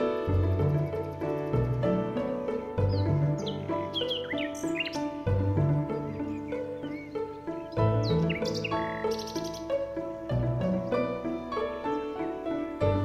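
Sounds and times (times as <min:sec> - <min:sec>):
birds chirping: 0:00.0 - 0:13.0
calm instrumental music: 0:00.0 - 0:13.0.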